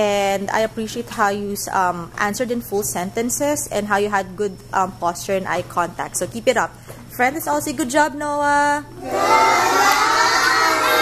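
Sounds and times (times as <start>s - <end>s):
children calling out in chorus: 9.0s - 11.0s.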